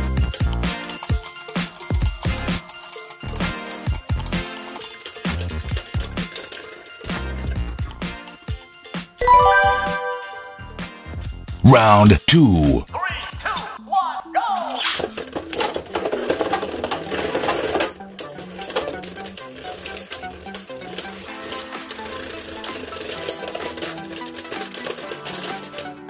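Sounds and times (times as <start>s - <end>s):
background music: 0.2s - 12.9s.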